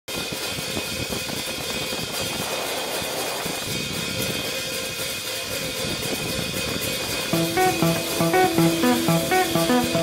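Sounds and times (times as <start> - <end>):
wind noise: 0.4 - 7.3.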